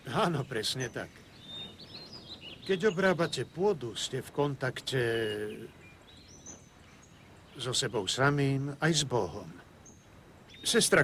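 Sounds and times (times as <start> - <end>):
faint high bird chirps: 0.0 - 11.0
quiet outdoor ambience: 0.0 - 11.0.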